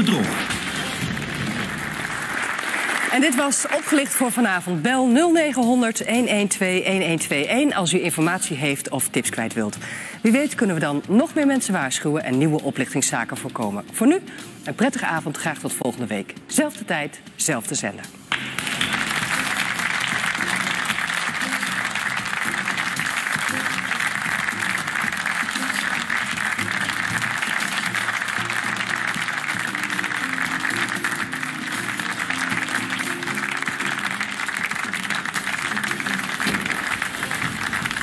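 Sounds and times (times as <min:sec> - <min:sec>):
closing theme music: 0:00.0 - 0:04.6, 0:18.2 - 0:38.0
studio audience applauding: 0:00.0 - 0:05.1, 0:18.3 - 0:38.0.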